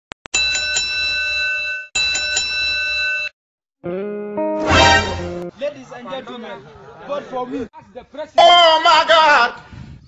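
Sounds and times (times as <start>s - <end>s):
music: 3.8s - 5.5s.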